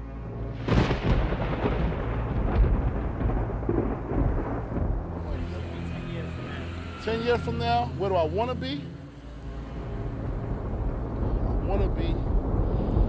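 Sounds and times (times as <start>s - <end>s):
low musical drone: 0.0s - 13.0s
rain: 0.1s - 8.0s, 9.1s - 13.0s
thunder rumbling: 0.6s - 7.2s, 9.8s - 13.0s.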